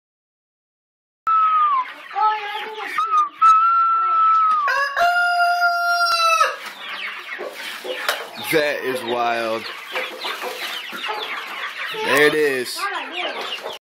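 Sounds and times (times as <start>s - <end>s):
rooster crowing: 4.6s - 6.6s.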